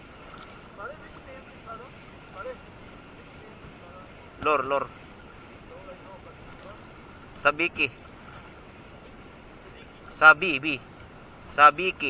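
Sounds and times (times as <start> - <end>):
water at the shore: 0.0 - 12.0
wind: 0.0 - 12.0.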